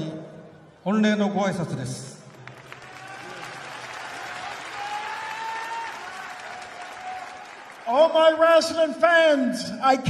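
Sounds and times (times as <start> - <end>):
large crowd applauding: 2.3 - 8.8.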